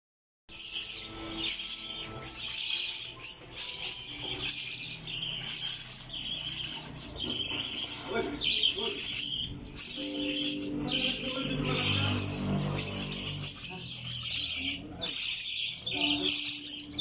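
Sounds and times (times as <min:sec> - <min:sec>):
chicks raspy begging calls: 0:00.6 - 0:17.0.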